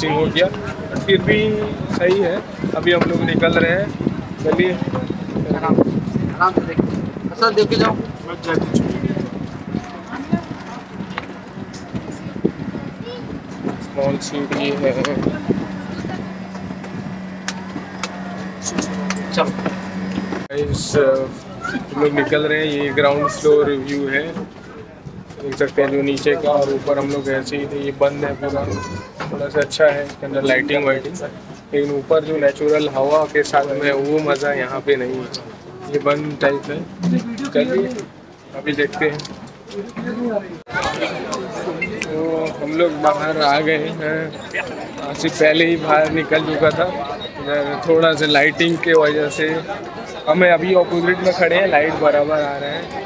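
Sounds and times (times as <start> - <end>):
boat machinery humming: 0.0 - 53.0
people chattering: 0.0 - 53.0.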